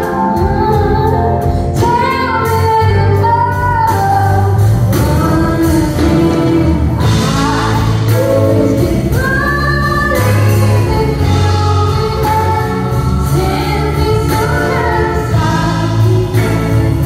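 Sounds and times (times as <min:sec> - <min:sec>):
live band with guitars and drums: 0:00.0 - 0:17.0
woman singing into a microphone: 0:00.0 - 0:17.0.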